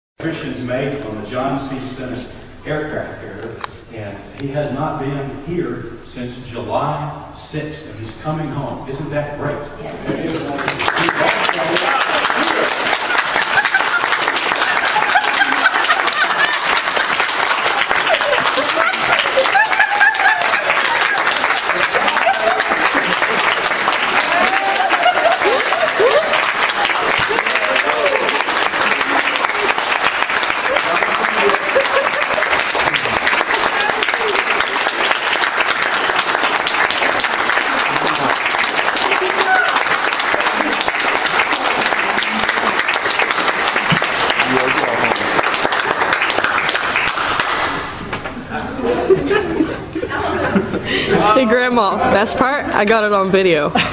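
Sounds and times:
congregation applauding: 10.2s - 48.4s.

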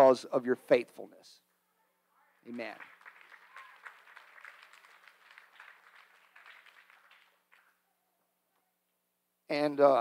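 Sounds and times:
faint applause: 2.3s - 7.8s.

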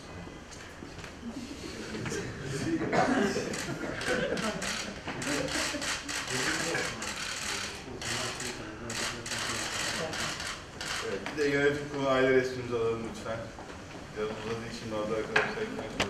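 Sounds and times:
murmur of voices: 1.2s - 16.0s
camera shutters clicking: 3.5s - 11.1s.

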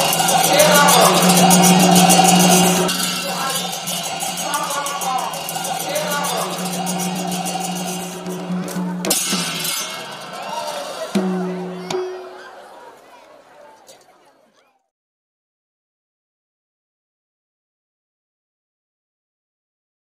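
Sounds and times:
steady held tone: 0.0s - 12.6s
fast-beaten cymbals: 0.0s - 12.7s
person singing or chanting: 0.4s - 9.1s.

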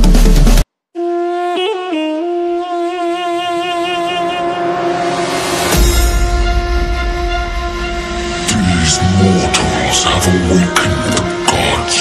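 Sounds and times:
horn-like chord over bass drone: 1.0s - 12.0s.

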